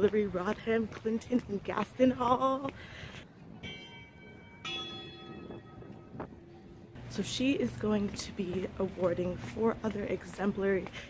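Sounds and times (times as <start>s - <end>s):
bell ringing: 3.6s - 7.0s.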